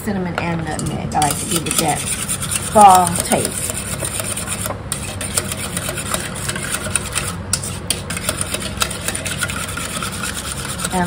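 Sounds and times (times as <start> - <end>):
steady low hum: 0.0 - 11.0
whisk scraping a metal bowl: 0.7 - 11.0.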